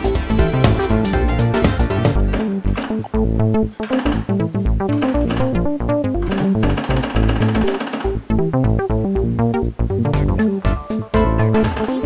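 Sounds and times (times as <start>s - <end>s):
electronic music: 0.0s - 12.0s.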